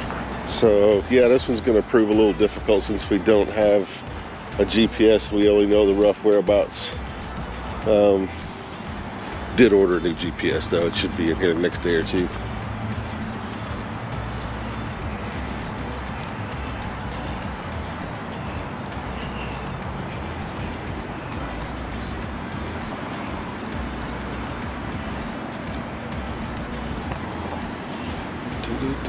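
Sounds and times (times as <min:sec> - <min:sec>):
background music with bass: 0:00.0 - 0:29.0
outdoor noise rush: 0:00.0 - 0:29.0.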